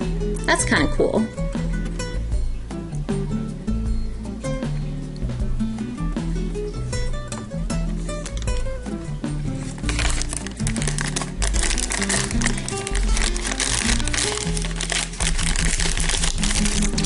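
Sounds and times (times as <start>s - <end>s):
background music: 0.0s - 17.0s
foil bag crinkling and tearing: 9.6s - 17.0s.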